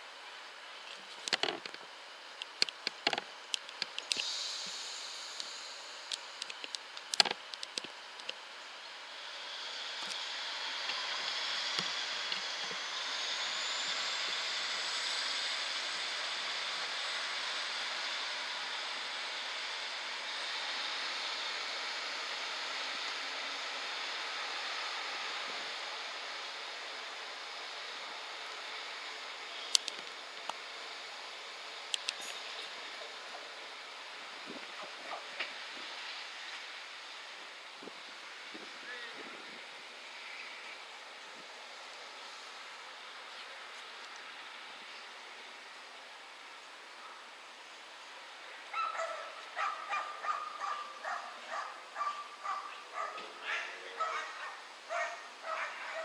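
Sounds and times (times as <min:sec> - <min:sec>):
diesel train pulling away: 0:03.3 - 0:56.0
sharp clicks: 0:32.0 - 0:32.4.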